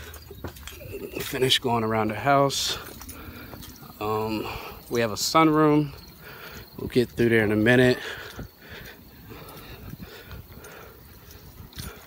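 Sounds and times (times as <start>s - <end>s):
footsteps on wooden deck: 0.0s - 12.0s.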